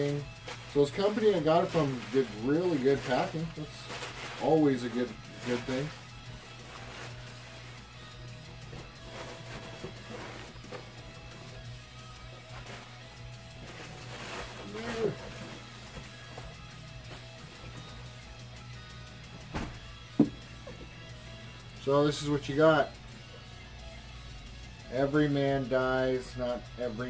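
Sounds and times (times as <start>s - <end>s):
quiet background music: 0.0s - 27.0s
packing paper rustling: 0.4s - 7.8s, 12.2s - 17.8s.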